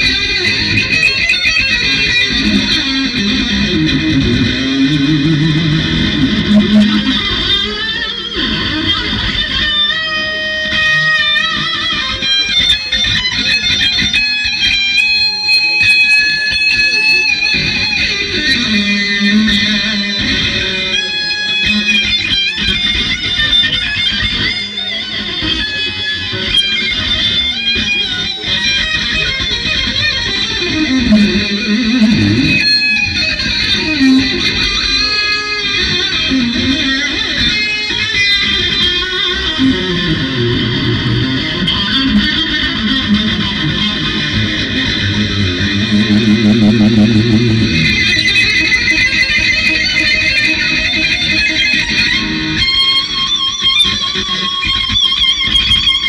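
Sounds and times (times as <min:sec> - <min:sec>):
electric guitar lead: 0:00.0 - 0:56.0.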